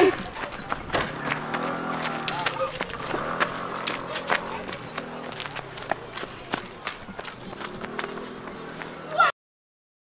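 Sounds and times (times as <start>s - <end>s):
footsteps running on dirt road: 0.0s - 9.2s.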